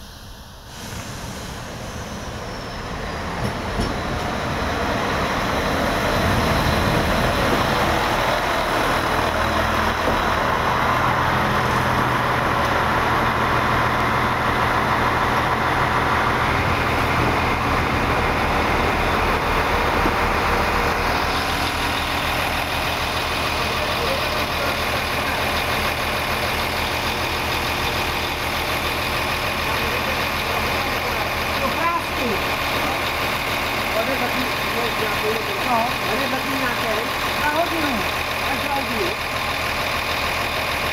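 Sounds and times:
electric train slowing to a stop: 0:00.0 - 0:40.9.

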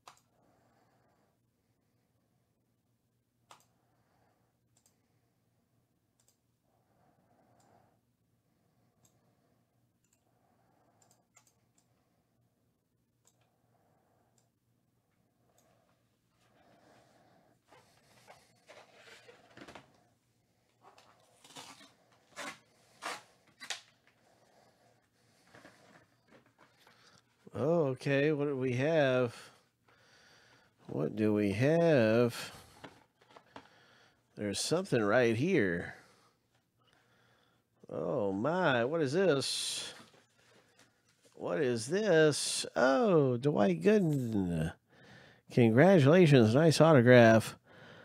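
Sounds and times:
computer mouse clicks: 0:00.0 - 0:00.3, 0:03.5 - 0:03.7, 0:04.7 - 0:05.0, 0:06.2 - 0:06.4, 0:10.0 - 0:10.3, 0:11.0 - 0:11.9.

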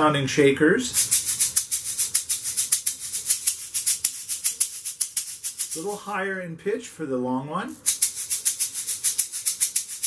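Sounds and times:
tube shakers rattling: 0:00.8 - 0:06.1, 0:07.8 - 0:10.0.

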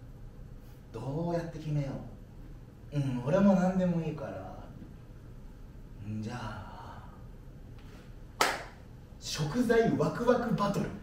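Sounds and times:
sharp hand clap: 0:08.4 - 0:08.8.

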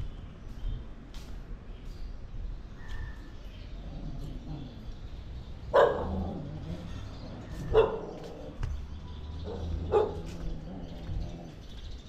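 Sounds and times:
dog barking: 0:05.7 - 0:06.5, 0:07.6 - 0:08.3, 0:09.4 - 0:10.3.

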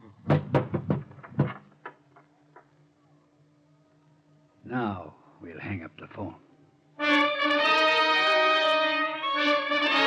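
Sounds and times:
sharp knocks and thuds: 0:00.2 - 0:02.7.

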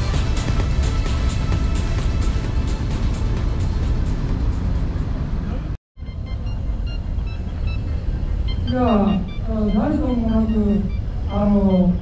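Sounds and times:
upbeat electronic music: 0:00.0 - 0:05.0
steady low rumble: 0:00.0 - 0:12.0.

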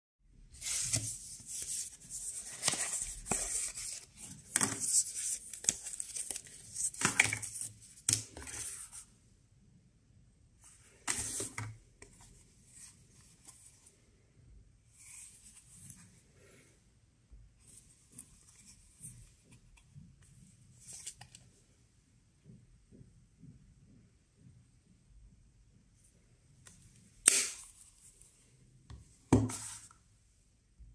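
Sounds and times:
paper packaging rustling: 0:00.6 - 0:09.0.

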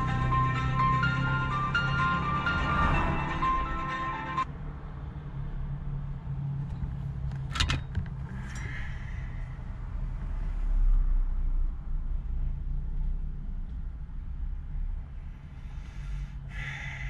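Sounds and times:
music: 0:00.0 - 0:04.5
car passing close: 0:00.0 - 0:12.3.

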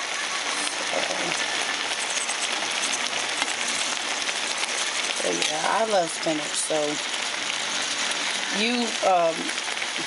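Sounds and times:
stew sizzling in a pot: 0:00.0 - 0:10.0.

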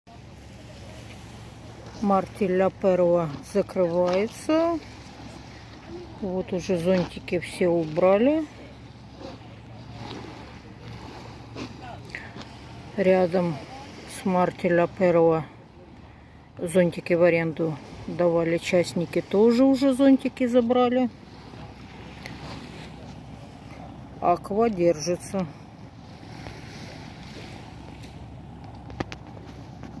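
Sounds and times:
steady low hum: 0:20.4 - 0:30.0.

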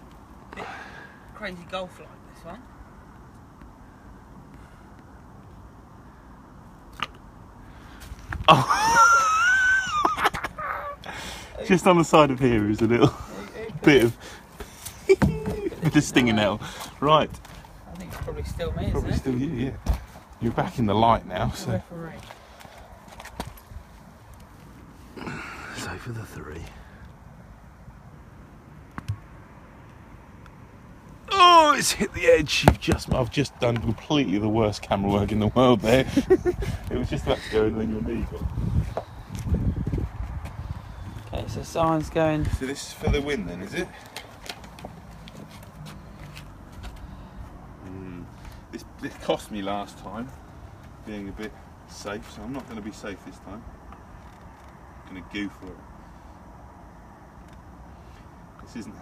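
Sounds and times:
low outdoor background noise: 0:00.0 - 0:59.0.

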